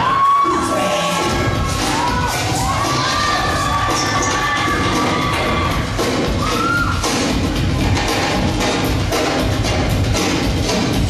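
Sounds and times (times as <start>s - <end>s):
audience screaming and cheering: 0.0s - 9.5s.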